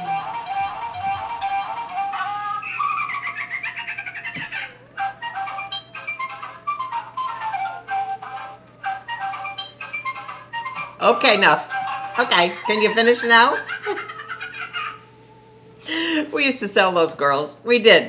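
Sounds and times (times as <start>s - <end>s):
tinny electronic tune: 0.0s - 2.9s.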